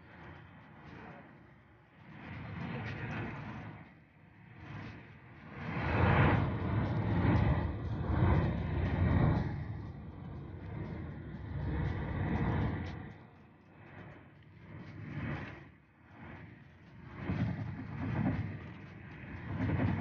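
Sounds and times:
wind noise: 4.4 - 20.0.

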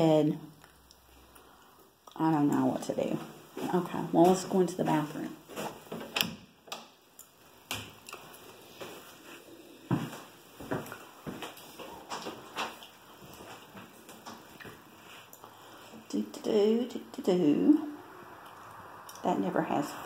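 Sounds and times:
footsteps: 3.0 - 6.1, 8.2 - 16.0.

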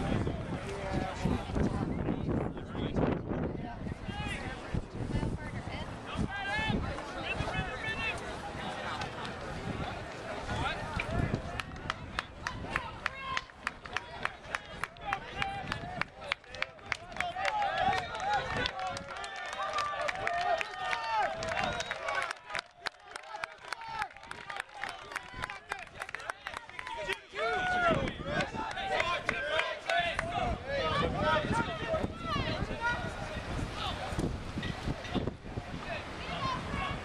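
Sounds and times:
spectators talking and calling out: 0.0 - 37.0
sharp evenly spaced claps: 11.0 - 27.3.

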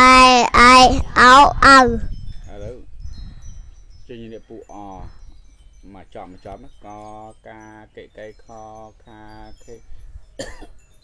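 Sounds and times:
child's voice: 0.0 - 2.2
faint high ringing tones: 2.0 - 11.0.

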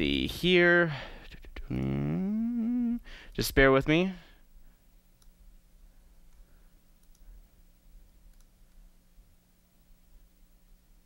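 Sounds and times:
steady low hum: 0.0 - 11.0
computer mouse and key clicks: 7.0 - 7.3, 8.3 - 8.8.

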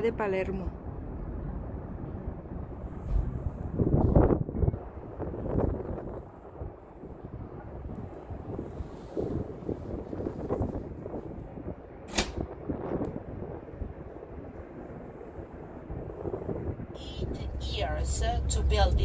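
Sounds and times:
wind buffeting microphone: 0.0 - 19.0
sharp click: 12.1 - 12.4.

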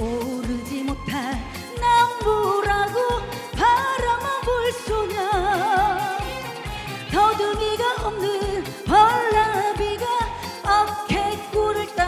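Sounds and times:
woman singing over backing track: 0.0 - 12.0.

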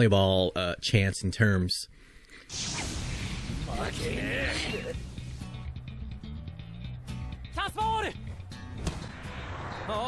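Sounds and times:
sharp hits: 2.5 - 5.8, 8.8 - 10.0
background music: 2.5 - 10.0
person shouting: 3.9 - 5.0.

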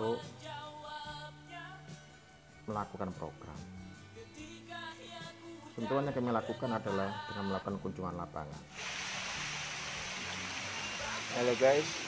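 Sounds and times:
stream water running over rock: 8.7 - 12.0.

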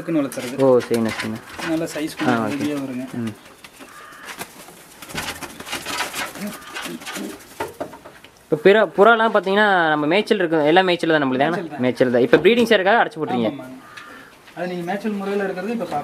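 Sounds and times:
man talking: 0.0 - 3.4, 8.5 - 13.8, 14.6 - 16.0
pigeons cooing: 0.0 - 9.1, 13.3 - 14.5.

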